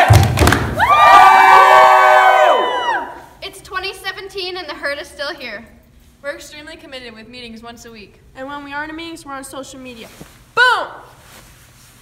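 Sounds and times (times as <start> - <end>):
teenagers cheering: 0.0 - 3.3.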